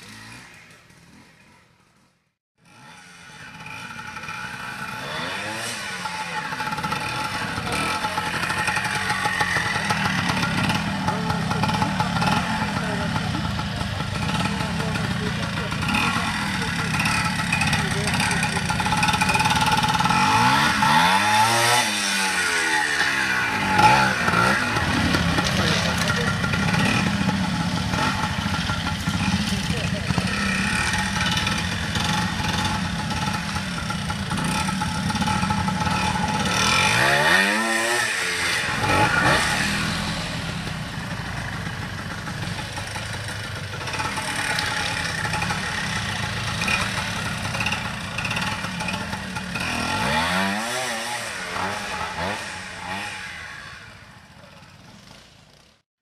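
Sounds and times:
motorcycle engine at low revs: 0.0s - 55.8s.

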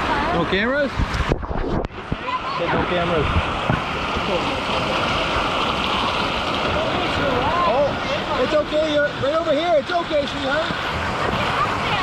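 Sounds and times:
moving water rushing: 0.0s - 12.0s.

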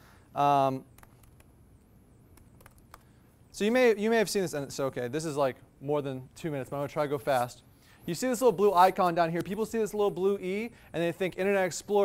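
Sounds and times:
faint keyboard clicks: 0.9s - 1.5s, 2.3s - 3.1s.

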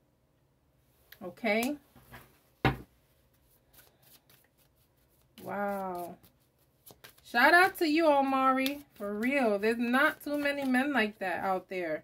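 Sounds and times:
cards being handled: 3.3s - 11.0s.

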